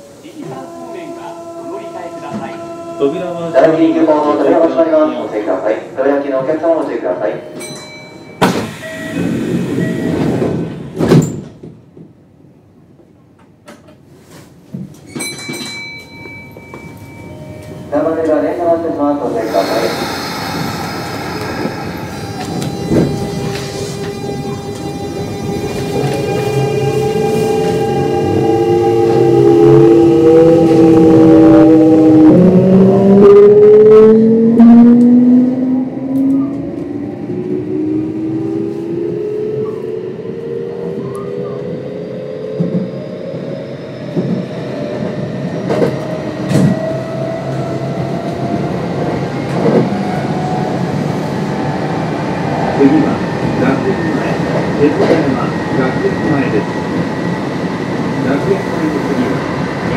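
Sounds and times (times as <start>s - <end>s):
train wheels rumbling on rails: 0.0s - 5.6s, 7.6s - 18.4s, 19.2s - 59.9s
electric train motor whine: 0.3s - 4.6s, 19.4s - 32.0s.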